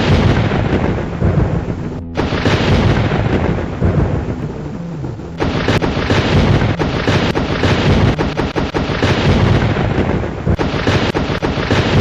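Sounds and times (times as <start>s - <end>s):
loud continuous rumbling: 0.0s - 12.0s.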